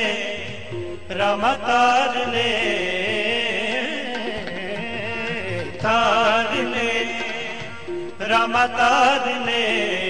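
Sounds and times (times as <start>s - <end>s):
man singing a hymn: 0.0s - 10.0s.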